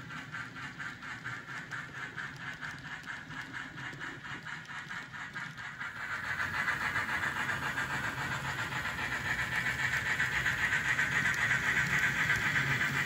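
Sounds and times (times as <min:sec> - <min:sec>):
model train whirring: 0:00.0 - 0:13.0
wheels clicking over track: 0:00.0 - 0:13.0.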